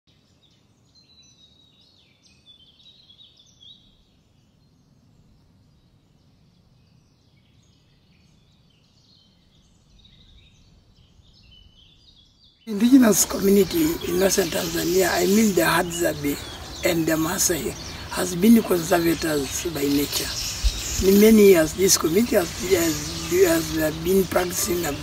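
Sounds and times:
faint bird chirps: 0.2 - 25.0.

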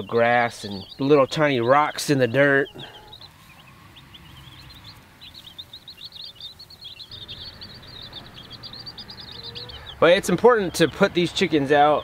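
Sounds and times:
baby chicks peeping: 0.0 - 12.0.

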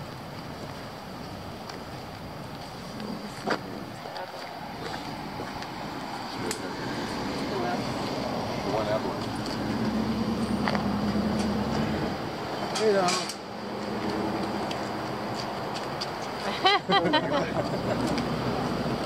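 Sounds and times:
outdoor background noise: 0.0 - 19.0
vehicle engine humming: 0.0 - 19.0
people talking nearby: 2.8 - 9.7.

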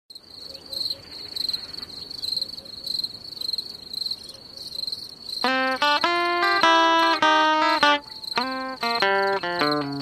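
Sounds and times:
crickets chirping: 0.1 - 10.0
plucked guitar notes: 5.4 - 10.0.

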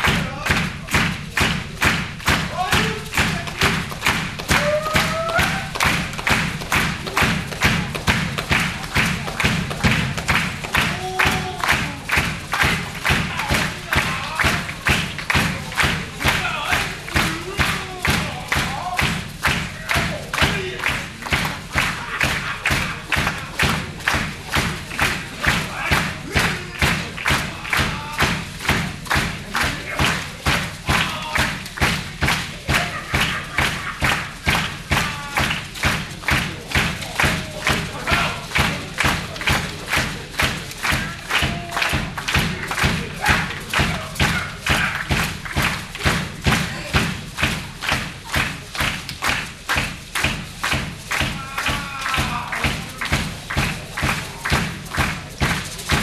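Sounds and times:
drum kit beat: 0.0 - 56.0.

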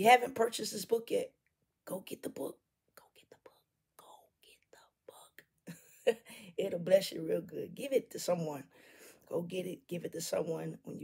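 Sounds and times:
woman whispering: 2.9 - 5.5
woman breathing: 6.2 - 6.6, 8.7 - 9.3.

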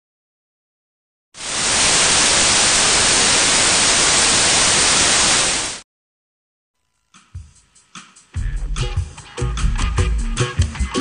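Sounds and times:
white noise static hiss: 1.4 - 5.8.

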